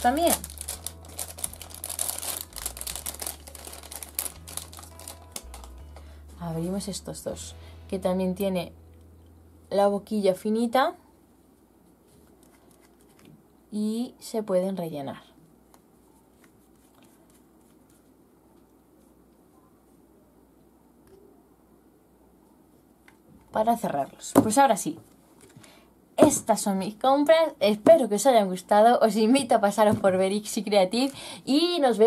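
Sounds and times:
plastic packaging crinkling: 0.0s - 6.1s, 12.3s - 13.3s.

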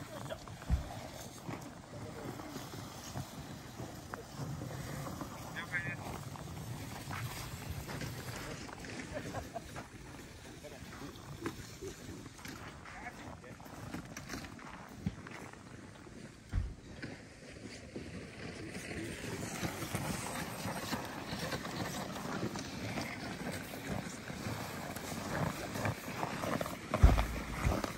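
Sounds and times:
footsteps crunching on snow: 0.0s - 27.9s
low thump: 27.0s - 27.8s.

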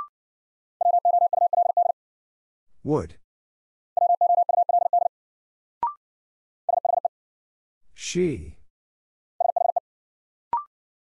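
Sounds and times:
morse code beeps: 0.8s - 2.0s, 4.0s - 5.1s.

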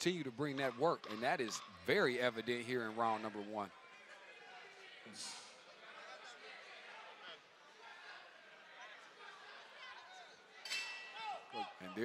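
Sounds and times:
arena crowd murmuring: 0.0s - 12.0s.

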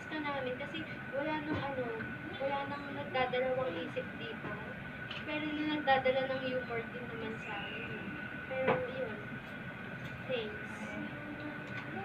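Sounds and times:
high-pitched hum: 0.0s - 12.0s.

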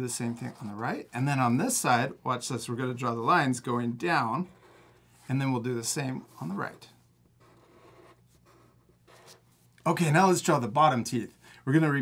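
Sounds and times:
marker scratching on paper: 4.4s - 5.3s, 7.4s - 9.5s.

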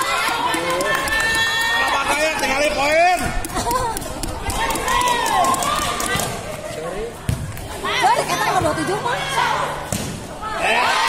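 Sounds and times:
crowd chatter: 0.0s - 11.0s
people shouting and calling out: 0.0s - 11.0s.

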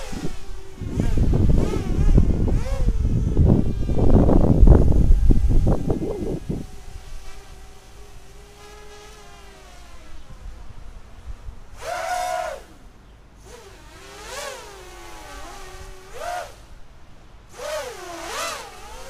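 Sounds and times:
quadcopter motors whining: 0.0s - 19.0s.

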